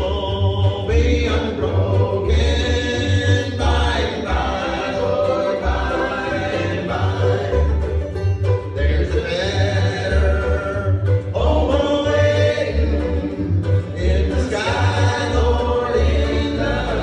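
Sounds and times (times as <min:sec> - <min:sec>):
voices singing in harmony: 0:00.0 - 0:08.0, 0:08.7 - 0:17.0
banjo and fiddle: 0:00.0 - 0:17.0
upright bass low notes: 0:00.0 - 0:17.0.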